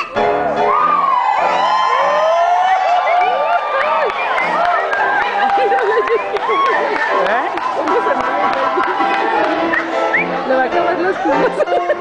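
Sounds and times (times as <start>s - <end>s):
audience cheering and whooping: 0.5s - 12.0s.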